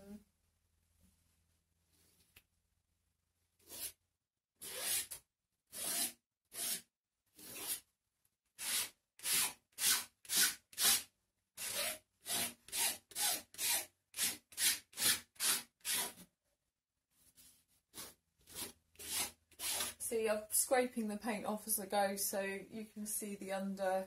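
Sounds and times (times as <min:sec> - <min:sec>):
palette knife scraping paint on paper: 0:17.4 - 0:20.0.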